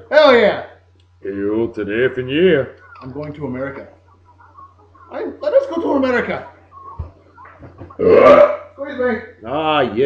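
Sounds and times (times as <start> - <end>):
man burping loudly: 8.0 - 8.8.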